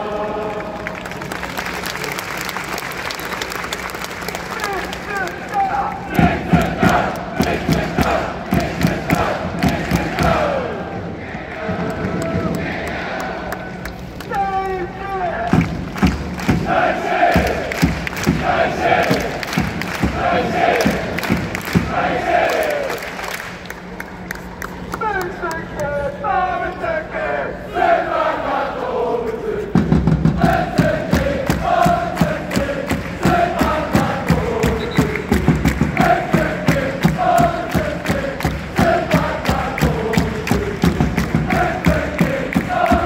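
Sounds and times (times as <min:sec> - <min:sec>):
crowd chanting: 0:00.0 - 0:00.9, 0:05.5 - 0:13.8, 0:16.4 - 0:23.3, 0:26.2 - 0:43.0
hand claps: 0:00.6 - 0:10.4, 0:15.5 - 0:16.7, 0:17.3 - 0:25.9, 0:30.4 - 0:43.0.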